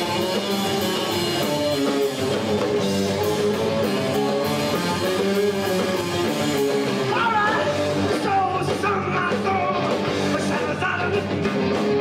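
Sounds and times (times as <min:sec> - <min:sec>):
live rock band playing: 0:00.0 - 0:12.0
person singing: 0:07.0 - 0:11.9.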